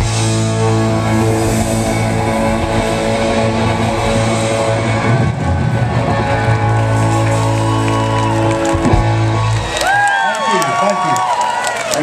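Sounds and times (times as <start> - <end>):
live band sustained chord: 0.0 - 9.8
crowd cheering and whooping: 4.6 - 12.0.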